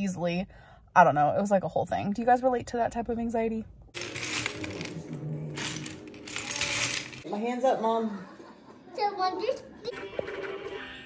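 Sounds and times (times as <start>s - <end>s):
plastic bricks clattering: 4.0s - 7.3s.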